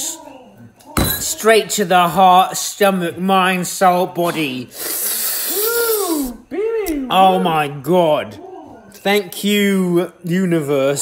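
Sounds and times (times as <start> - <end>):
man hooting: 5.4 - 7.2.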